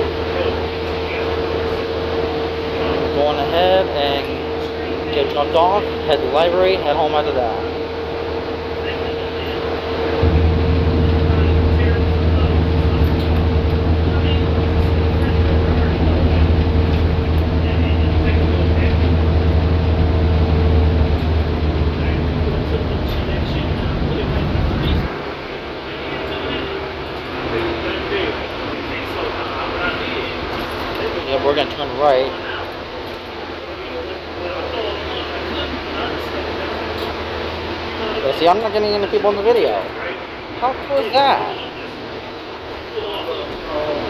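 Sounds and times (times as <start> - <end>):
bus engine drone: 0.0 - 44.0
steady whine: 0.0 - 44.0.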